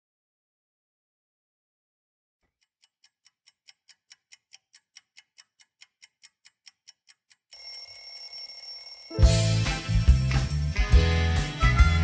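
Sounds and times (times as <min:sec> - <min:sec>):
alarm clock ticking fast: 0:02.7 - 0:11.4
alarm clock ringing: 0:07.6 - 0:11.4.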